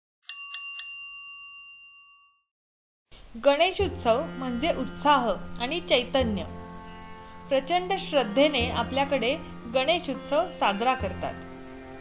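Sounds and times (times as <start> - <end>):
metallic bell ring: 0.3 - 2.5.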